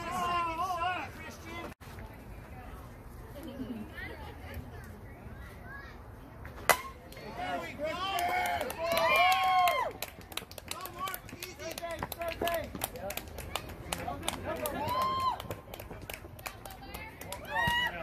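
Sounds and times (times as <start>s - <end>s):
bat hitting ball: 6.6s - 7.1s
players shouting: 7.2s - 9.9s.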